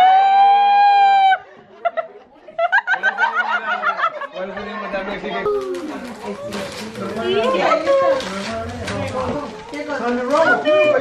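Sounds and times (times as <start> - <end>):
people laughing: 1.3 - 6.2
people talking: 2.6 - 11.0.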